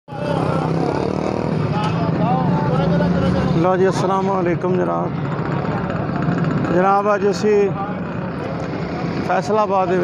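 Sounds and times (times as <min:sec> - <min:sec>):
people talking: 0:00.1 - 0:10.0.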